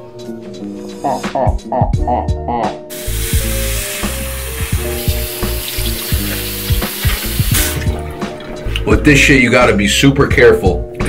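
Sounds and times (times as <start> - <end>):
background music: 0.0 - 11.0
tap running into sink: 4.0 - 8.9.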